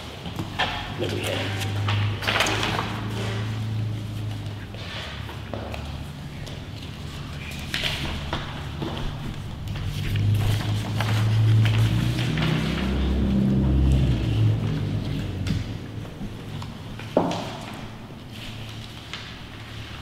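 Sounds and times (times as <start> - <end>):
paper rustling: 0.0 - 20.0.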